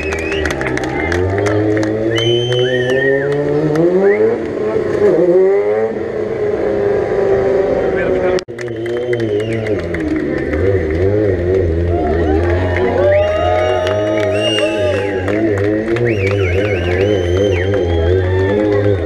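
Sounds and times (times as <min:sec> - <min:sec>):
motorcycle engine revving hard: 0:00.3 - 0:19.0.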